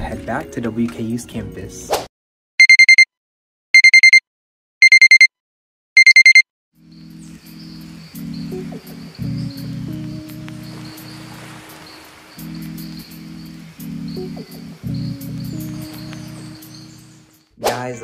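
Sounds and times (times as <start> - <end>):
background music with low chords: 0.0 - 1.9, 6.8 - 18.0
electronic alarm beeping: 2.6 - 3.1, 3.8 - 4.2, 4.8 - 5.3, 6.0 - 6.4.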